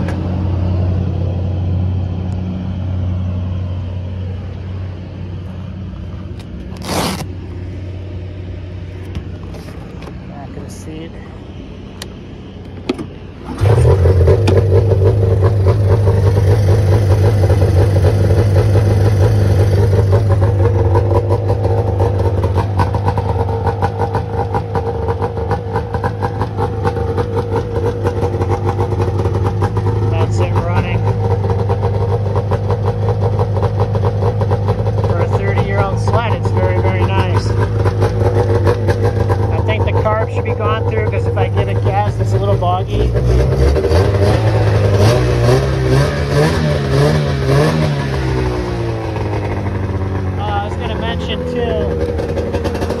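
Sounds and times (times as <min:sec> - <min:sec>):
snowmobile engine starting and idling: 0:06.0 - 0:07.4, 0:12.9 - 0:53.0.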